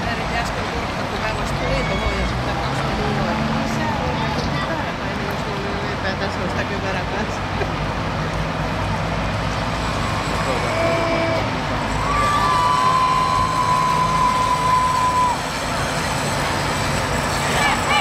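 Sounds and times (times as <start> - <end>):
trucks diesel engine rumble: 0.0 - 18.0
people shouting: 10.4 - 15.8.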